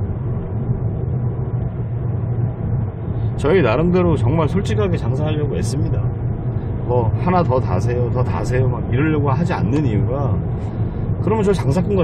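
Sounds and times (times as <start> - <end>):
car engine hum: 0.0 - 12.0
tyre and road noise: 0.0 - 12.0.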